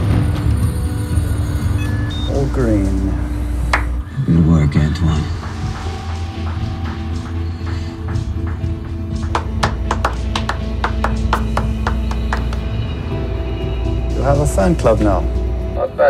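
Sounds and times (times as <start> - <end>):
dramatic score music: 0.0 - 16.0
people clapping: 3.7 - 4.0, 4.6 - 13.0.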